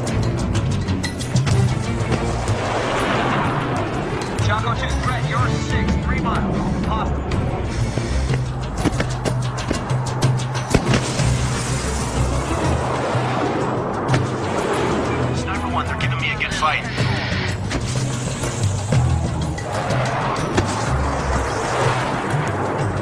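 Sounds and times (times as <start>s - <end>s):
dramatic soundtrack music: 0.0s - 23.0s
jet aircraft noise: 0.0s - 23.0s.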